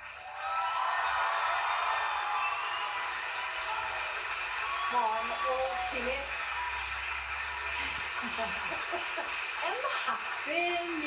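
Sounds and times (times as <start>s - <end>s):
audience applauding and cheering: 0.0s - 11.0s
whistles from audience: 0.3s - 5.8s.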